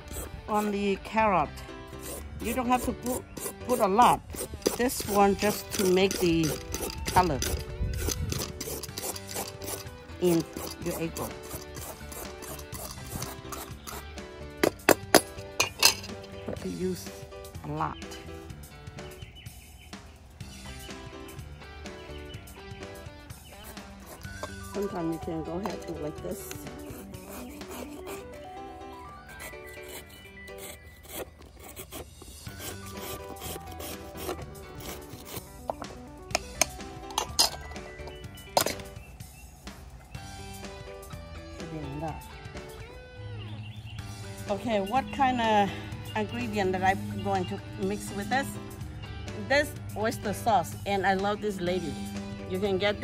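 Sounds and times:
peeler scraping carrot: 0.0 - 1.0, 1.7 - 14.2, 23.3 - 37.6
background music: 0.0 - 53.0.

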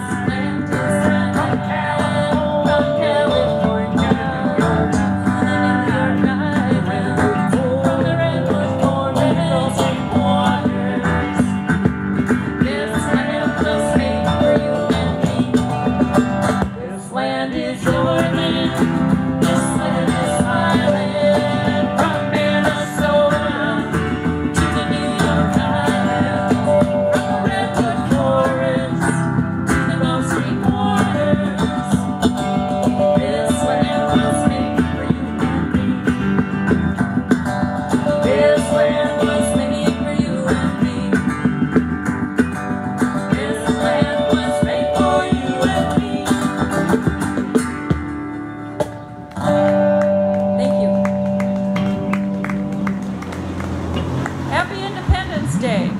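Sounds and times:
acoustic guitar strumming: 0.0 - 55.9
electric guitar melody: 0.0 - 55.9.

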